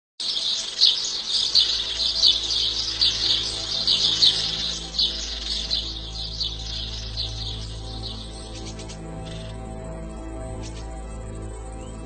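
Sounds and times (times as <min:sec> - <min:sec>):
birds chirping: 0:00.2 - 0:11.0
low steady drone: 0:00.2 - 0:12.0.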